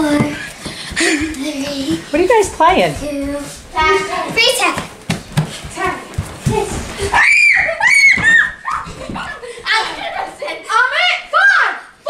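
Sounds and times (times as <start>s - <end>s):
bare feet running on wooden floor: 0.0s - 9.8s
children shrieking: 7.0s - 10.1s.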